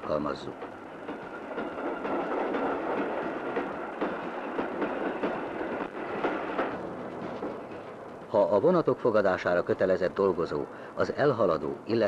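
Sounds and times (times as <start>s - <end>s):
wheels clicking on rails: 0.0s - 9.5s
train rolling rumble: 0.0s - 12.0s.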